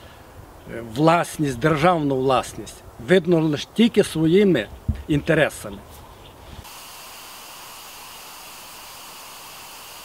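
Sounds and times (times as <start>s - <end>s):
steady hiss: 5.4s - 10.0s.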